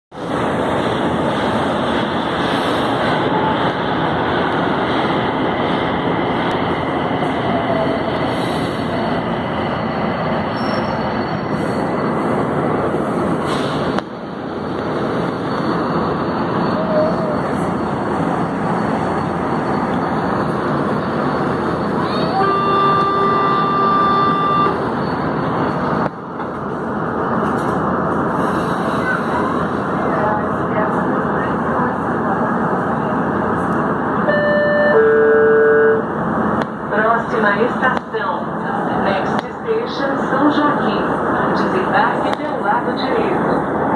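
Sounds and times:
train wheels rumbling on rail: 0:00.1 - 0:34.4, 0:35.9 - 0:43.9.

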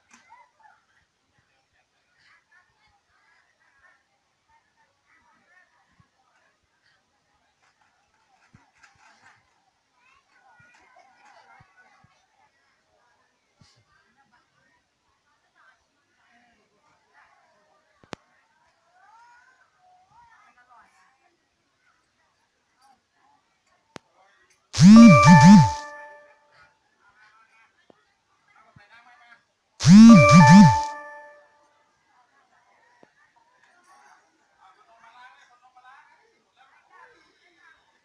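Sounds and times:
cartoonish voice effect sliding in pitch: 0:24.8 - 0:26.1, 0:29.8 - 0:31.3
music jingle: 0:24.8 - 0:26.2, 0:29.8 - 0:31.4.

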